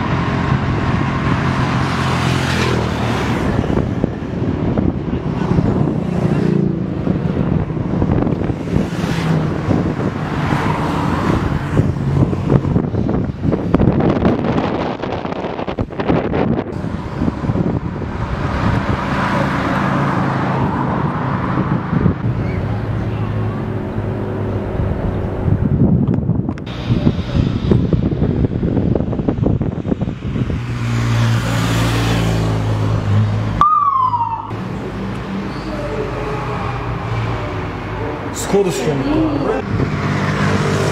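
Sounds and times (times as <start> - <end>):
motorcycle engines passing: 0.0 - 14.1, 26.7 - 40.9
falling siren chirp: 33.6 - 34.6
police siren: 33.6 - 34.6.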